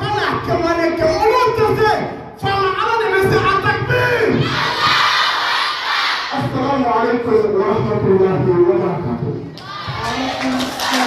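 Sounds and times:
crowd shouting and cheering: 0:04.3 - 0:06.5, 0:09.5 - 0:11.0.

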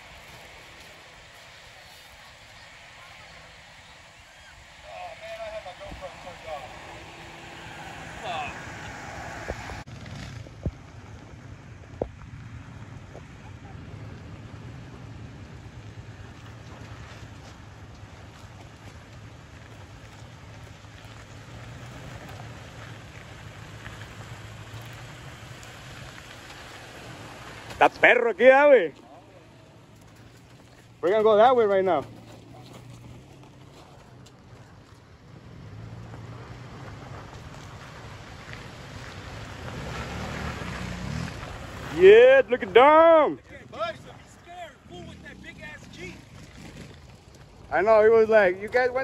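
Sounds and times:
faint voices: 0:00.0 - 0:09.8
distant engine: 0:00.0 - 0:49.0
pickup truck engine hum: 0:00.0 - 0:49.0.

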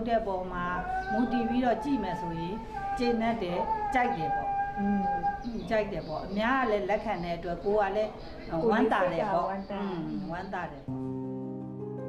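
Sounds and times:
woman speaking: 0:00.0 - 0:10.9
background music with held notes: 0:10.8 - 0:12.0.

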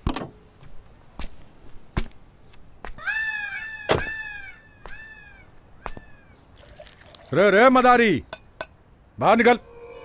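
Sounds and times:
animal high cries: 0:03.0 - 0:06.3.

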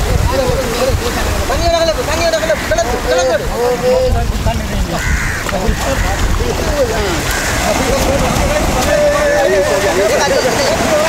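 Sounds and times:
voices talking and calling: 0:00.0 - 0:11.0
wind rumbling on microphone: 0:00.0 - 0:11.0.

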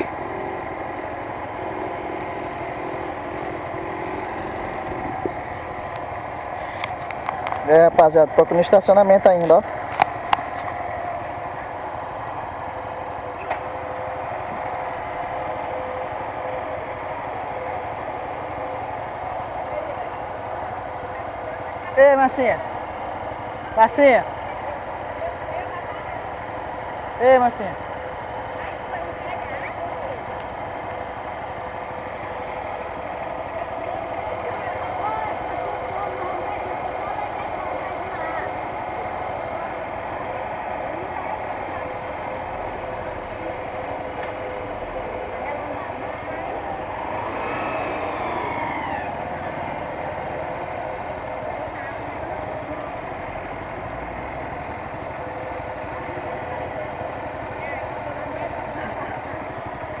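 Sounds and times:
passing traffic: 0:00.0 - 1:00.0
small motorcycle engine idling: 0:00.0 - 1:00.0
street noise: 0:00.0 - 1:00.0.

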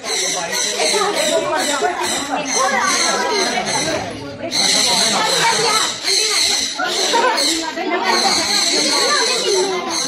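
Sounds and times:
children and adults talking: 0:00.0 - 0:10.0.

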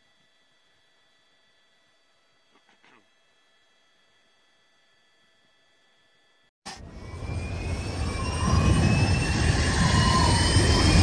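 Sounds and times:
faint rising whistling tones: 0:06.7 - 0:11.0.

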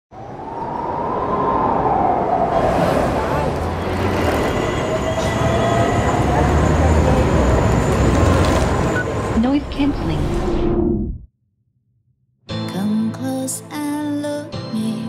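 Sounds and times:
city street noise: 0:00.1 - 0:10.7
train rumbling: 0:00.2 - 0:10.6.

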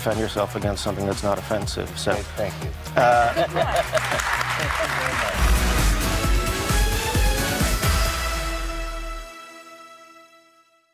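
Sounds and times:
audience laughing and applauding: 0:03.0 - 0:06.2
outro music with deep bass beat: 0:05.3 - 0:09.3.

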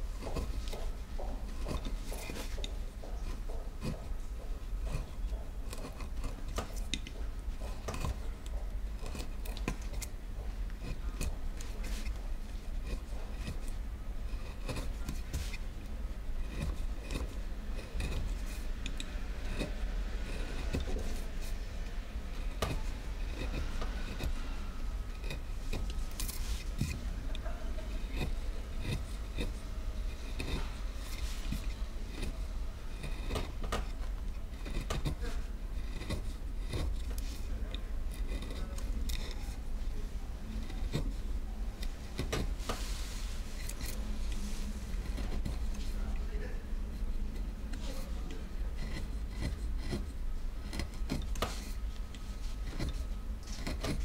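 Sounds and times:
chisel clicking and scraping wood: 0:00.0 - 0:54.0
steady low hum: 0:00.0 - 0:54.0.

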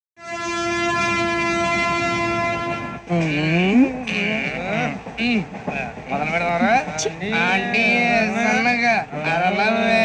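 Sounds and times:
diesel locomotive horn blast: 0:00.2 - 0:03.2.

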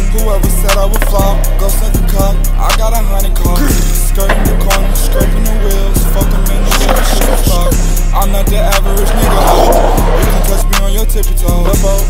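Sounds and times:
hip-hop beat: 0:00.0 - 0:12.0
skateboard wheels rolling on asphalt: 0:00.2 - 0:12.0.

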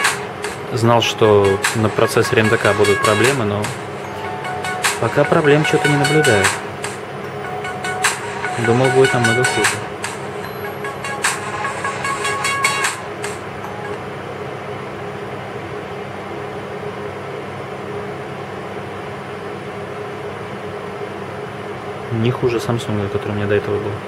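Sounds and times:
tinny electronic game jingle: 0:01.8 - 0:14.7.

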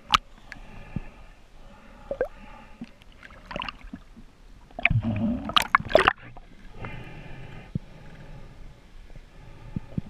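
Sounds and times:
water splashing and sloshing: 0:01.8 - 0:07.2.

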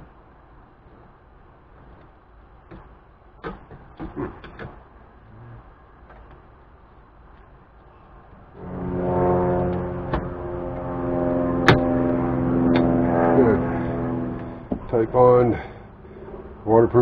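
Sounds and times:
many-pitched droning hum: 0:00.0 - 0:17.0.

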